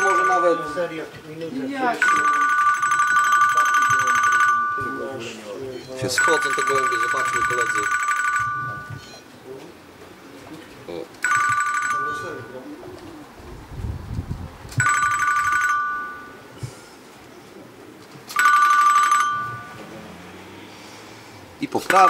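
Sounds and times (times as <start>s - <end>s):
electronic telephone ringing tone: 0.0s - 1.2s, 1.8s - 9.2s, 11.2s - 12.7s, 14.8s - 16.5s, 18.3s - 19.8s.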